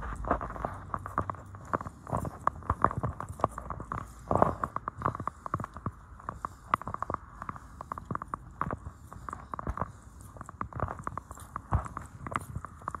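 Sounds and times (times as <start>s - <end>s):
footsteps on paved path: 0.0s - 13.0s.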